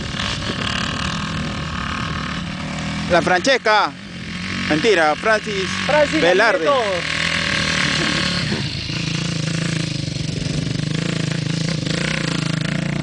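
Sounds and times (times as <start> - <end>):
dirt bike engine running: 0.0 - 13.0.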